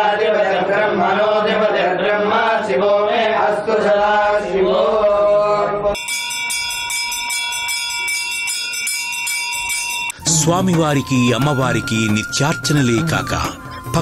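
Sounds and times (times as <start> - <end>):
men chanting: 0.0 - 6.0
hand bell ringing quickly: 6.0 - 10.3.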